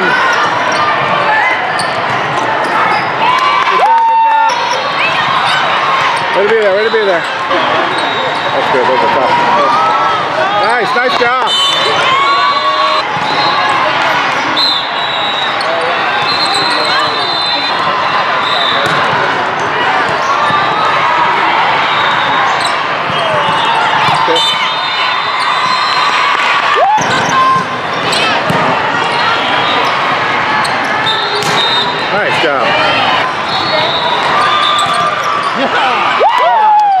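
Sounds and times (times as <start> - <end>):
sneakers squeaking on floor: 0.0 - 3.2, 4.5 - 8.8, 13.0 - 17.8, 21.9 - 26.2, 27.0 - 32.0, 33.3 - 35.7
volleyballs hit and bouncing: 4.6 - 7.3, 18.8 - 20.7, 26.0 - 29.4, 31.3 - 32.0.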